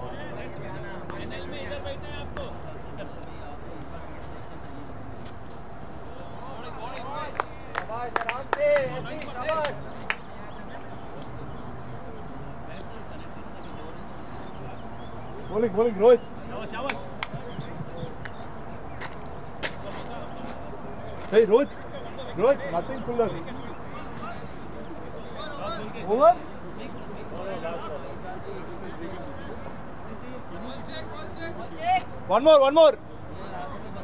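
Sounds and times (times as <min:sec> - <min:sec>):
outdoor background noise: 0:00.0 - 0:34.0.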